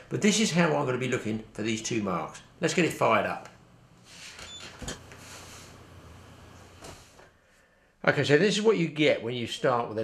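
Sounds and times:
low room hiss: 0.0s - 10.0s.

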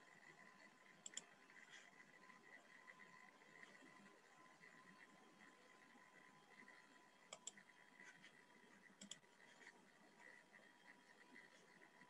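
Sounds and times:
faint steady tone: 0.0s - 12.0s
faint clicks: 0.9s - 5.6s, 6.5s - 12.0s.

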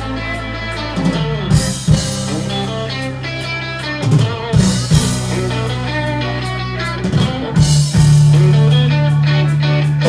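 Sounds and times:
live ska band: 0.0s - 10.0s.

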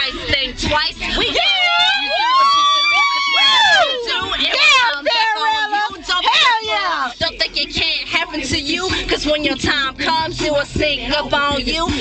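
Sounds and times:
people whooping and cheering: 1.4s - 4.9s.

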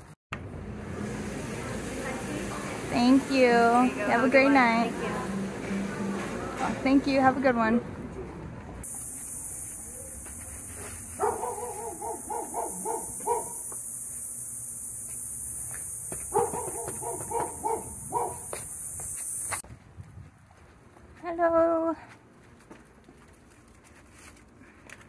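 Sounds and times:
steady high hiss: 0.8s - 7.6s, 8.8s - 19.6s
dog barking: 10.8s - 13.6s, 16.3s - 18.5s.

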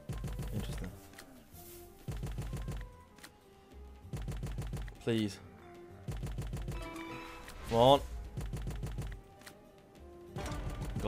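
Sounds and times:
slot game music: 0.0s - 11.0s.

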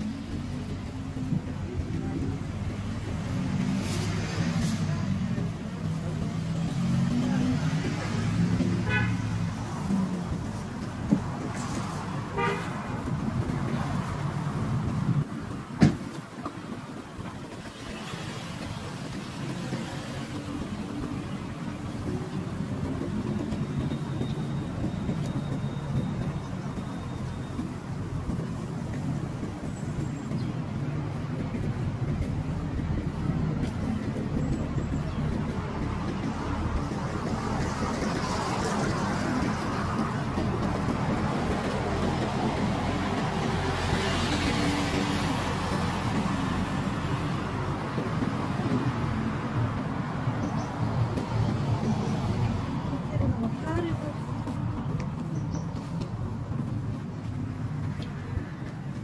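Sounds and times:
city traffic rumble: 0.0s - 59.0s
vehicles passing close by: 0.0s - 59.0s.

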